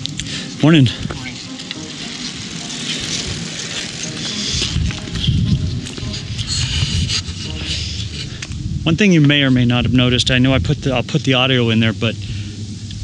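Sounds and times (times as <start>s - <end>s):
bicycles riding past: 0.0s - 13.0s
faint voices: 0.2s - 13.0s
wind on microphone: 3.0s - 13.0s.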